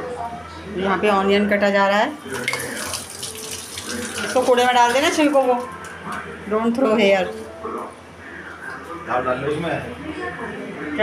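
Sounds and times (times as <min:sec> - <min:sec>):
tap water splashing in metal sink: 0:02.3 - 0:05.7.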